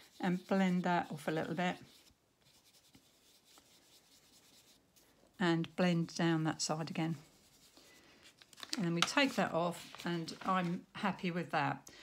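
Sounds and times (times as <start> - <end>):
foam dauber rubbing on card: 0.0 - 4.8.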